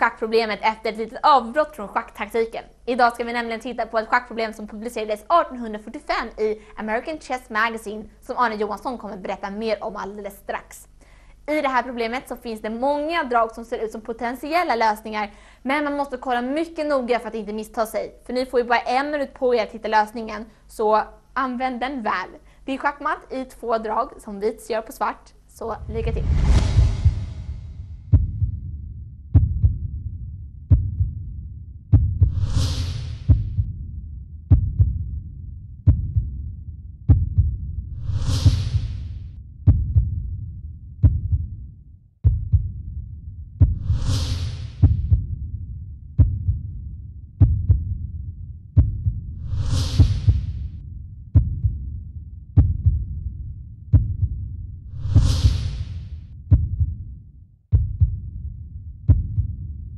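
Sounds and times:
swoosh: 25.6 - 28.2, 32.2 - 33.4, 37.9 - 39.3, 43.7 - 45.0, 49.4 - 50.6, 54.9 - 56.1
low thumps: 25.6 - 52.0, 52.6 - 53.3, 54.0 - 57.0.

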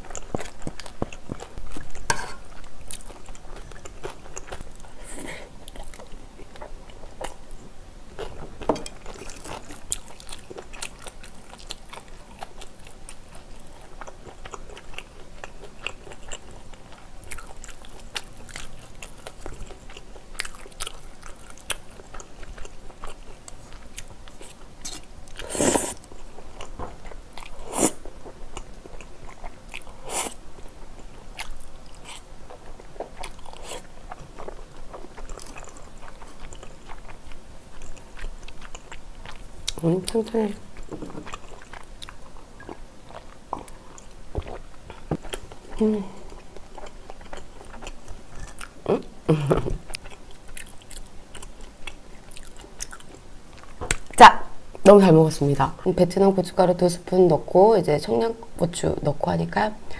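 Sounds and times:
wet chewing and mouth sounds: 0.0 - 54.8.

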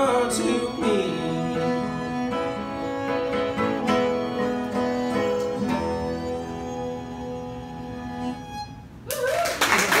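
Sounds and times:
fiddle and guitar notes: 0.0 - 9.0
audience applause: 9.1 - 10.0
whooping cheer: 9.1 - 10.0.

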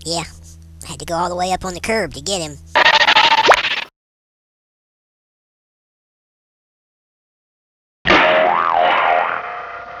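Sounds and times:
cartoon boing: 8.1 - 10.0.

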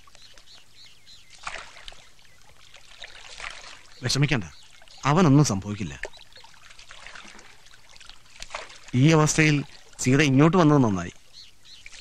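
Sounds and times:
faint bird chirps: 0.0 - 3.1, 3.7 - 7.4, 9.0 - 12.0
soft water sounds: 0.0 - 12.0
paddle splashing in water: 1.2 - 10.4, 11.8 - 12.0.

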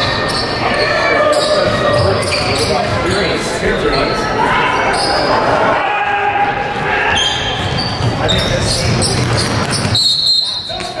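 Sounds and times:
shoe squeaks: 0.0 - 4.2, 7.1 - 11.0
voices echoing: 0.0 - 11.0.

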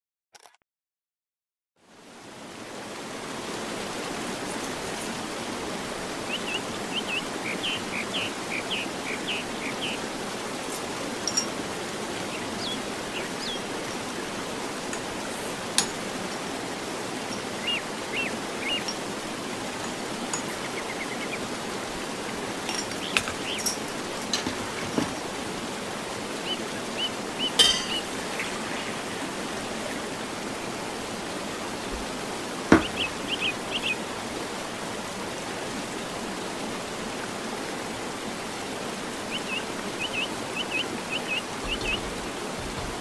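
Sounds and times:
rushing water: 1.8 - 43.0.

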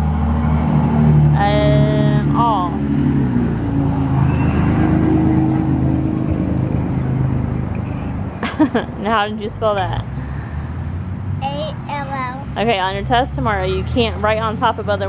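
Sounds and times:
engine rumbling: 0.0 - 15.0.

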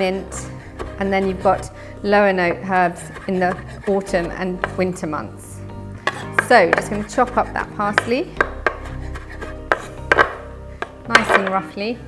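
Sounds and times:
soft background music: 0.0 - 12.0
knife chopping on wooden board: 2.4 - 4.9, 6.1 - 11.6.

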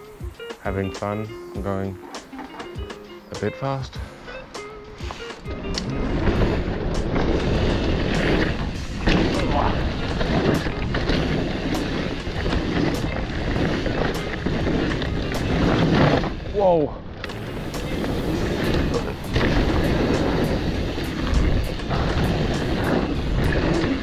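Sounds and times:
background music: 0.0 - 16.2, 17.3 - 24.0
wind: 0.0 - 24.0
rolling tyre noise: 4.7 - 24.0
bike rattles and knocks: 5.7 - 24.0.

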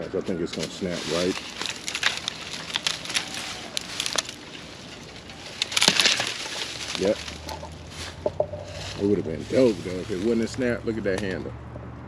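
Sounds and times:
wood crackling and snapping: 0.5 - 9.1.

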